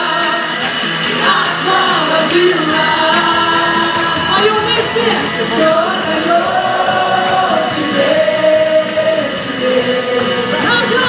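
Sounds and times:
people singing worship song: 0.0s - 11.0s.

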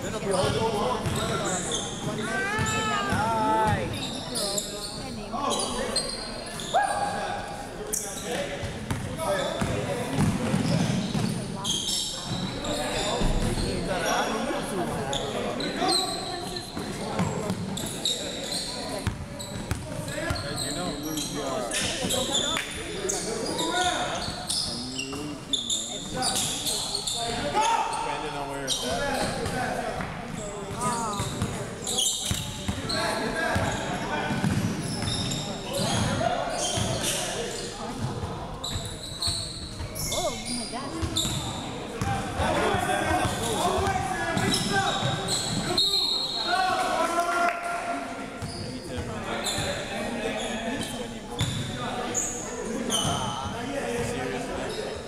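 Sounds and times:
players calling out: 0.2s - 4.6s.

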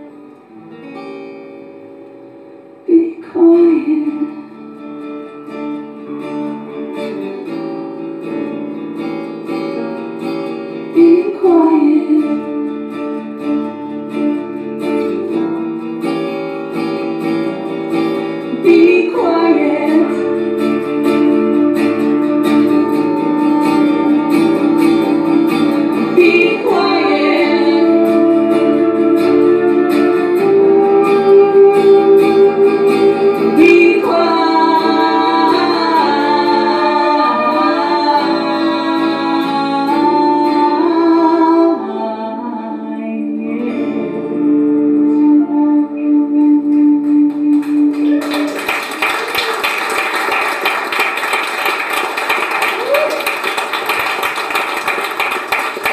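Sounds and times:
strummed acoustic guitar: 0.0s - 48.7s
woman singing slow song: 2.8s - 4.6s, 10.9s - 12.7s, 18.5s - 20.5s, 25.9s - 48.0s.

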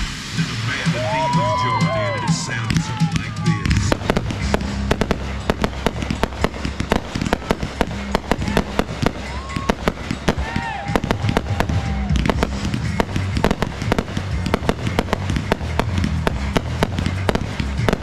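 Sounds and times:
country-rock music over loudspeakers: 0.0s - 18.0s
fireworks bangs and crackles: 0.0s - 18.0s.

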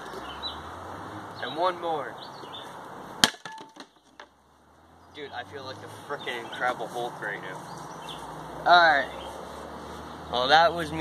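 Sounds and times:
falling pieces knocking: 3.2s - 4.3s.

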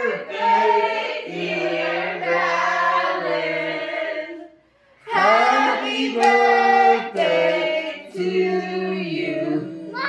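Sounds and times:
group singing long notes: 0.0s - 10.0s.

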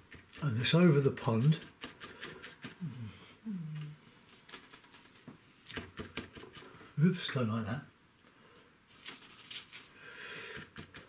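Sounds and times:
person humming low: 2.8s - 4.0s
brush tapping on paper: 4.5s - 6.8s, 10.5s - 11.0s.

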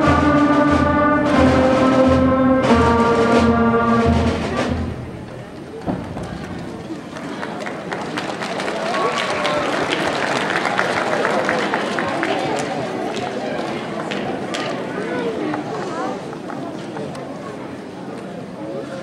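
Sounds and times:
concert band playing chords: 0.0s - 6.9s
low drum beats: 0.0s - 7.0s
audience murmuring: 0.0s - 19.0s
audience applause: 5.8s - 14.6s.

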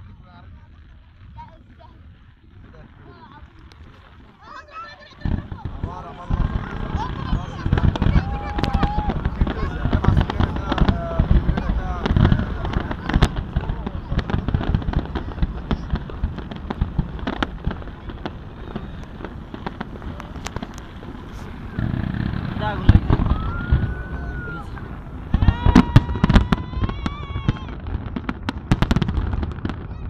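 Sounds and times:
fireworks bangs and crackles: 0.0s - 30.0s
rumble of firework bursts: 0.0s - 30.0s.

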